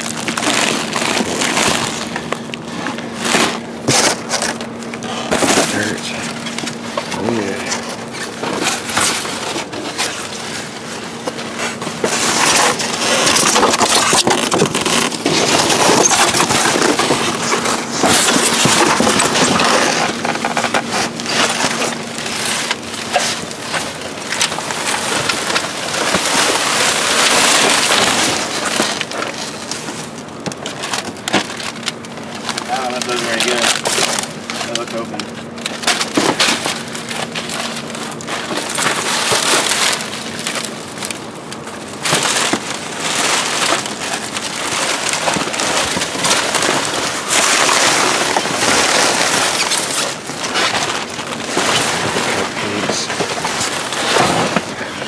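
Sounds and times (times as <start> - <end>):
plastic bags and cardboard rustling: 0.0 - 55.0
steady low hum: 0.0 - 55.0.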